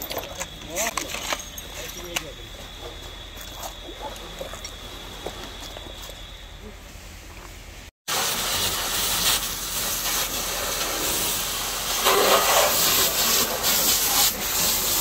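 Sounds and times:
hose jetting water: 8.1 - 15.0.

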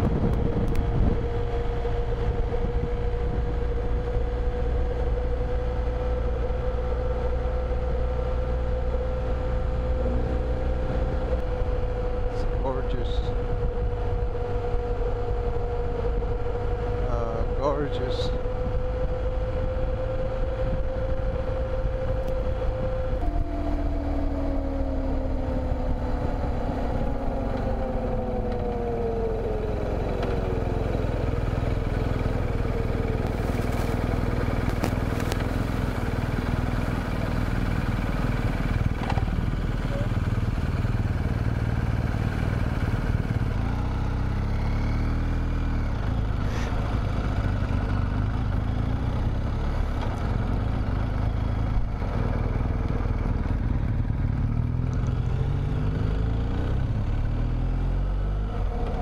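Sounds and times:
motorcycle engine: 0.0 - 59.0.

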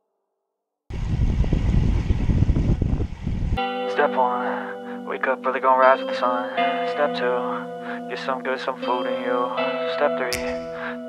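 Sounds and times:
wind buffeting microphone: 0.9 - 3.6
music: 3.6 - 11.0.

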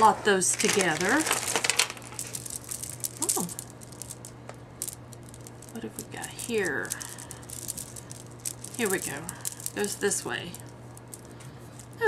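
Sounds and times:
beads clicking and rattling: 0.4 - 12.0.

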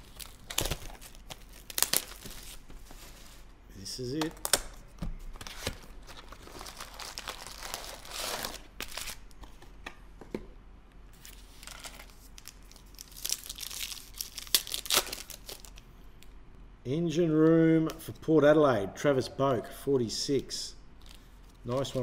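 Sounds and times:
foil packet tearing open: 0.0 - 2.5, 6.3 - 9.2, 11.6 - 15.8
foil packets crinkling: 0.0 - 2.7, 5.6 - 9.2, 11.2 - 15.8.

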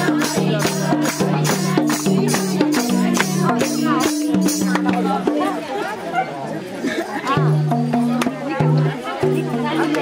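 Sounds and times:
folk music: 0.0 - 10.0
women chattering: 0.0 - 10.0.

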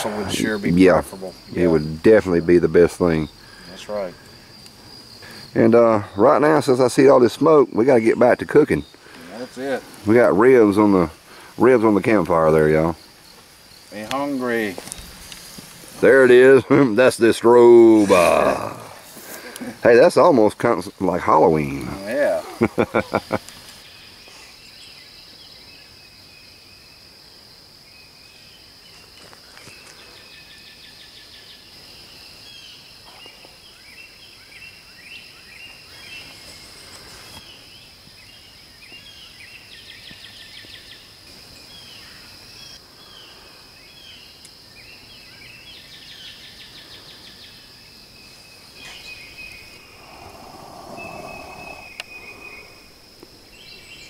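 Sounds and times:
birds singing: 0.0 - 27.1, 27.8 - 54.0
high-pitched insect drone: 48.8 - 54.0.

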